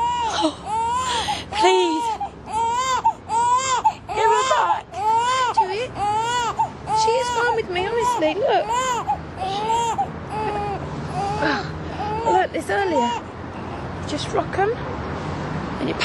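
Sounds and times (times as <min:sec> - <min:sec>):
newborn baby crying: 0:00.0 - 0:13.3.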